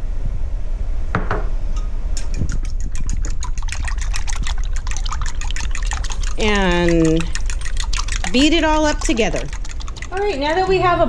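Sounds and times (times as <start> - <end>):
fork clinking against bowl: 1.8 - 4.0
butter poured into bowl: 2.2 - 10.7.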